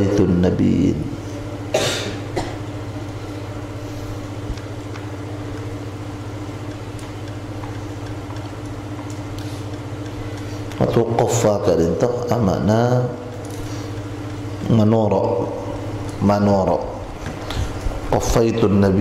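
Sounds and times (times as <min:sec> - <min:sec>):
low electrical hum with tones: 0:00.0 - 0:19.0.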